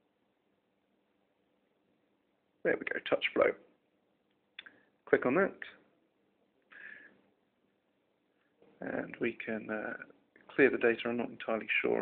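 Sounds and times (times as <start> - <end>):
man speaking: 2.6 - 3.7, 5.0 - 5.9, 8.8 - 12.0
man's breathy sound: 6.7 - 7.2.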